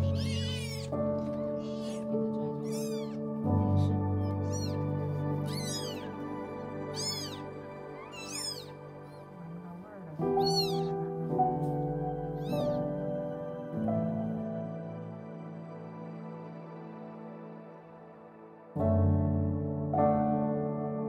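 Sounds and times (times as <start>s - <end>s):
kittens mewing: 0.0s - 13.0s
soft background music: 0.0s - 21.0s.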